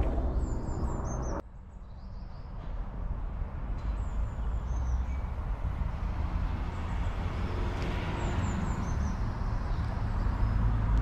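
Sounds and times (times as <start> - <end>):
high falling bird chirps: 0.1 - 2.6.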